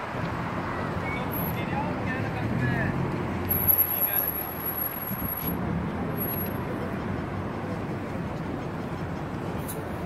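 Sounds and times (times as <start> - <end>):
steady road traffic: 0.0 - 10.0
vehicle rumbling past: 0.3 - 10.0.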